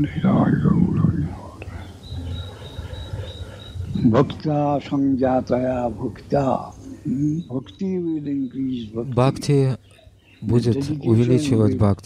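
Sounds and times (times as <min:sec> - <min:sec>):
man speaking: 0:00.0 - 0:01.8, 0:03.9 - 0:09.8, 0:10.4 - 0:12.0.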